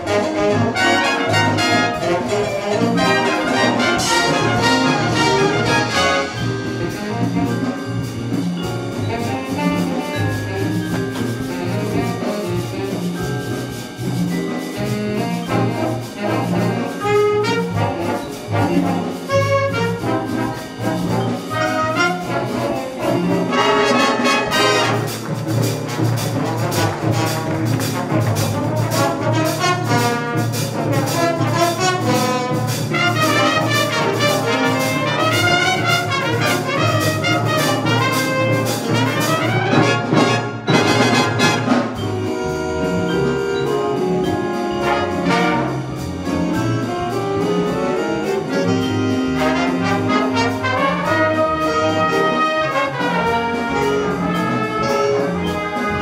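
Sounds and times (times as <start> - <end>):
big band jazz playing: 0.0 - 56.0.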